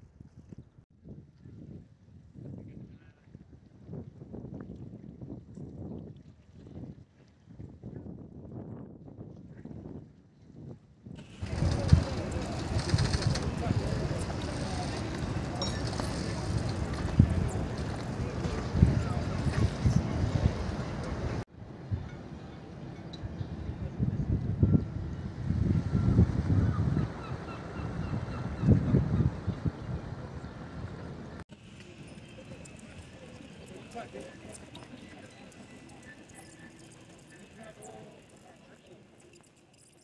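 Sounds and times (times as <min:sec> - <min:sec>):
wind buffeting microphone: 0:00.0 - 0:22.4, 0:23.2 - 0:36.3
faint outdoor ambience: 0:11.2 - 0:40.0
people's voices: 0:11.2 - 0:40.0.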